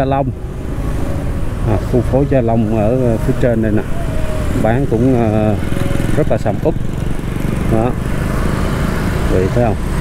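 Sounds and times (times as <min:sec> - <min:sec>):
road and wind noise: 0:00.0 - 0:10.0
motorbike engine running: 0:03.8 - 0:10.0.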